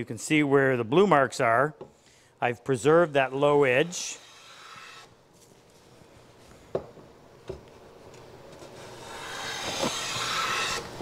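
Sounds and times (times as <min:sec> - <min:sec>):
hand plane cutting wood: 0:03.2 - 0:05.1, 0:08.9 - 0:10.9.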